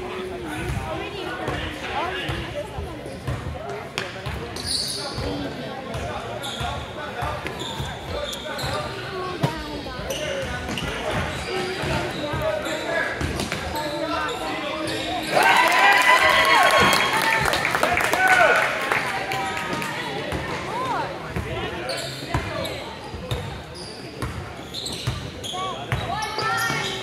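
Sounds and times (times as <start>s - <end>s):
spectators chattering: 0.0s - 27.0s
sneakers squeaking: 2.2s - 15.4s, 19.5s - 27.0s.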